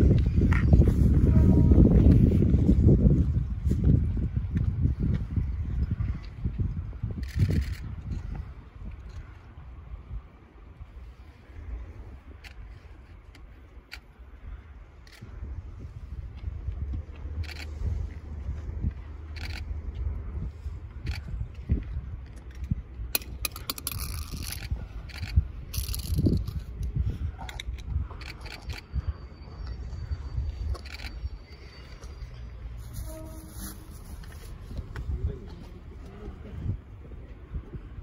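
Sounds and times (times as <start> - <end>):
train rumbling: 22.2 - 37.9.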